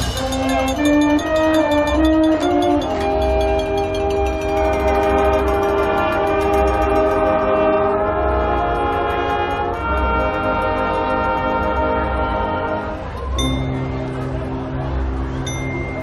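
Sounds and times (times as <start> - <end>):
brass section playing sustained chords: 0.0 - 13.2.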